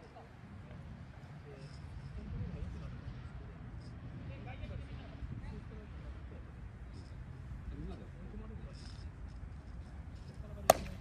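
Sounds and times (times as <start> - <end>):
bat hitting ball: 10.6 - 11.0.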